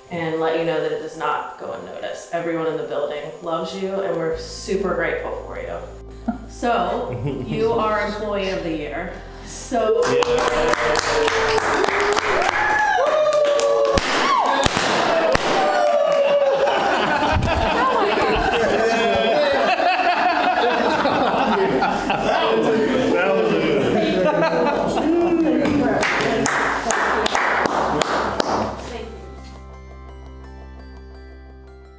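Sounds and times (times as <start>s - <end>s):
soft background music: 0.0s - 13.2s, 24.4s - 31.9s
excited voices: 9.7s - 27.3s
people whooping and cheering: 9.8s - 22.8s
confetti cannons popping: 13.6s - 16.2s
sharp claps or taps: 25.6s - 28.8s.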